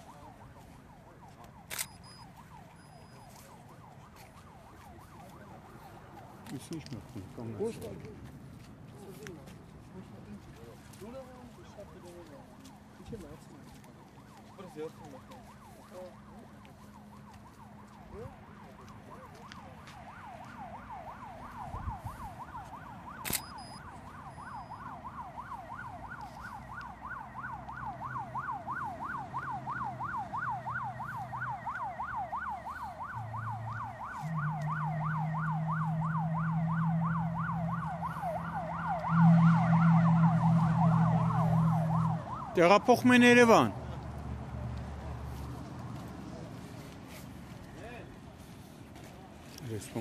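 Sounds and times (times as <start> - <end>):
emergency siren yelping: 0.0 - 8.0, 10.8 - 43.8.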